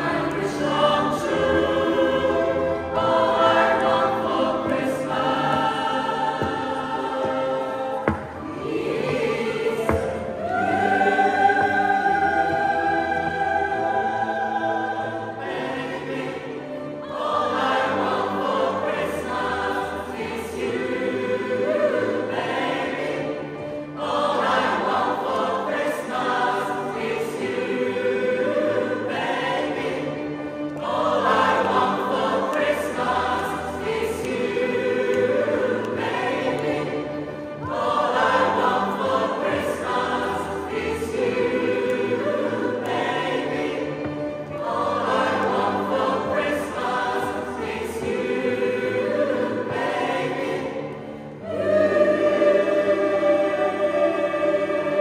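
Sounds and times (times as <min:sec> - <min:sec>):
mixed choir singing in parts: 0:00.0 - 0:55.0.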